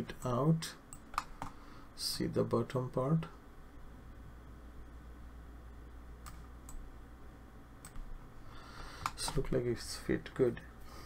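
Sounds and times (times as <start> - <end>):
low electrical hum: 0.0 - 11.0
computer mouse clicks: 0.9 - 1.6, 6.2 - 6.8, 9.0 - 9.6.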